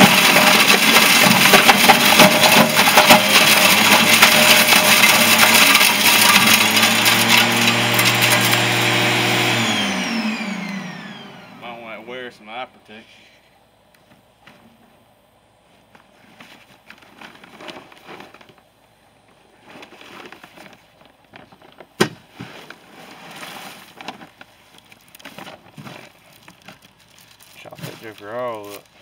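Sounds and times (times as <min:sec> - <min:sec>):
plastic bag rustling and crinkling: 0:00.0 - 0:08.5, 0:16.1 - 0:18.8, 0:19.4 - 0:29.0.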